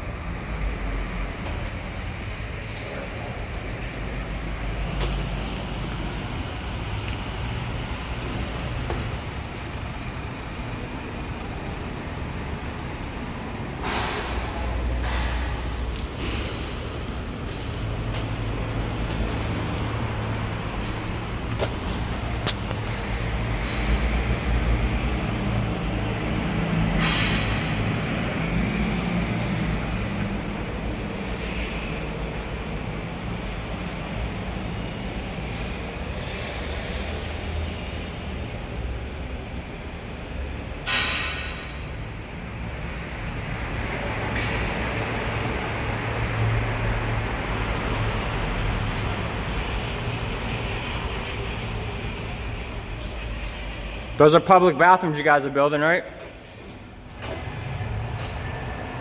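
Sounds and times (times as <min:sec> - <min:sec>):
traffic and engine rumble: 0:00.0 - 0:59.0.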